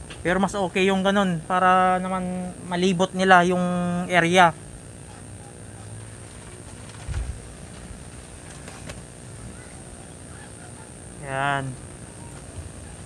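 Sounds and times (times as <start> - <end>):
high-pitched hum: 0.0 - 13.0.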